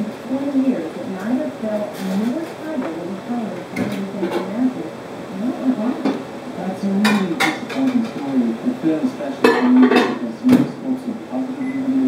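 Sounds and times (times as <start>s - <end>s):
conversation: 0.0s - 12.0s
dishes and utensils clinking: 9.4s - 10.3s.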